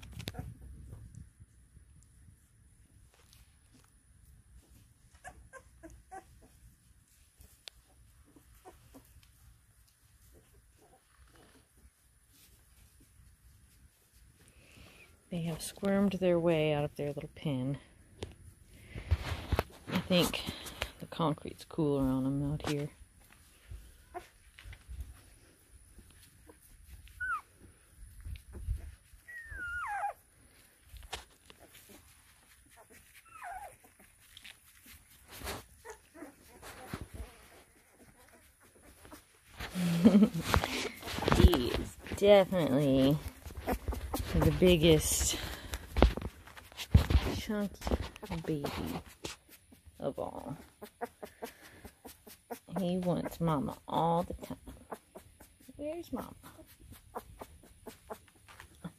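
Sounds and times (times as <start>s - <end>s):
puppy squeaking and whimpering: 5.1s - 6.6s, 8.3s - 9.2s, 26.6s - 27.6s, 28.5s - 30.3s, 32.7s - 34.2s, 35.7s - 39.4s.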